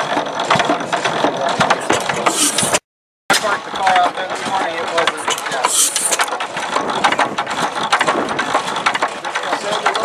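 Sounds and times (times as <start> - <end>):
gas engine clattering: 0.0 - 10.0.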